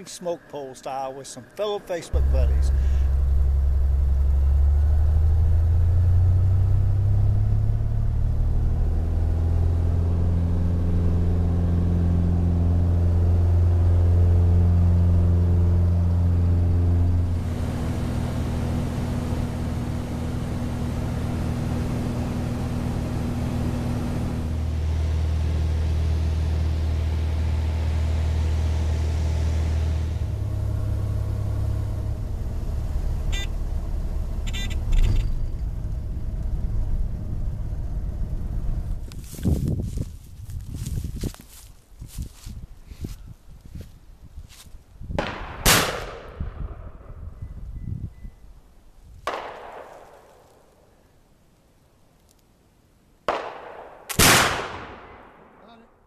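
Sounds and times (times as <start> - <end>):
propeller plane engine drone: 0.0 - 40.0.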